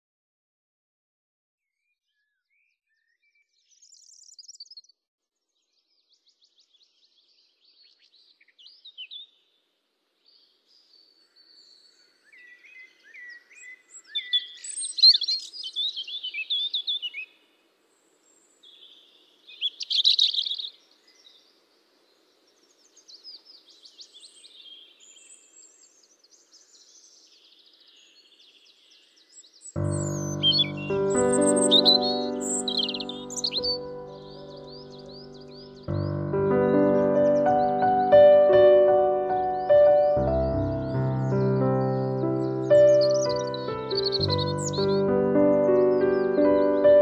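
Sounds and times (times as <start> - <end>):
birds chirping and singing: 10.3 - 17.4, 18.2 - 47.0
instrumental music with held notes: 29.8 - 47.0.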